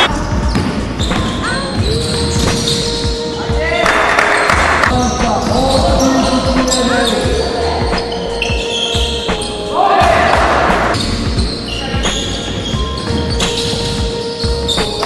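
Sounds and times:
sneaker squeaks: 0.0s - 15.0s
basketball bouncing on gym floor: 0.3s - 3.2s
players shouting: 3.4s - 11.0s.

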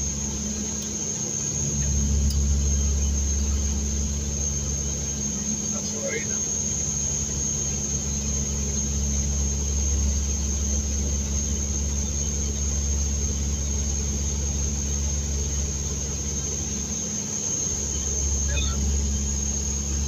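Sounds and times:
turboprop engines droning: 0.0s - 20.0s.

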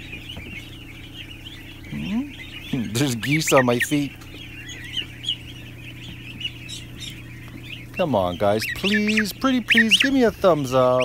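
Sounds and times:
ducklings and goslings peeping: 0.0s - 11.0s
steady low hum: 0.0s - 11.0s.

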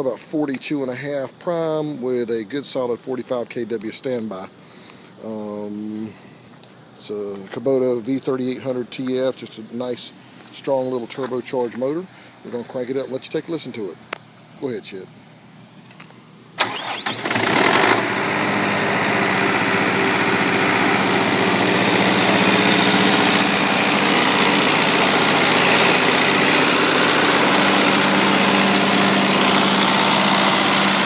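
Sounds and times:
engine starter cranking: 16.6s - 18.3s
diesel engine running: 16.6s - 31.0s.

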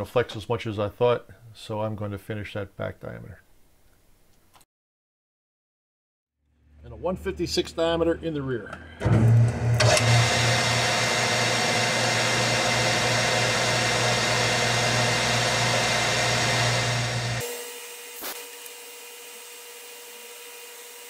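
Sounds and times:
metal lathe whirring and cutting: 9.8s - 21.0s.

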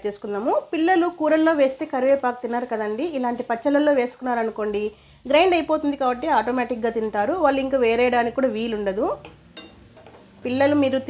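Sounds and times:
woman speaking: 0.0s - 9.2s, 10.4s - 11.0s.

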